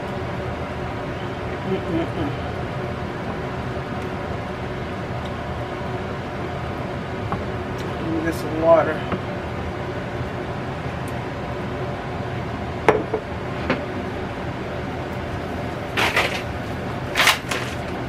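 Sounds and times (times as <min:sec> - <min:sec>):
steady background hum: 0:00.0 - 0:18.0.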